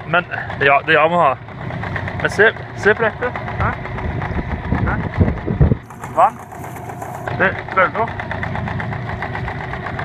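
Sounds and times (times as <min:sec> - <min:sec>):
outboard motor idling: 0:00.0 - 0:10.0.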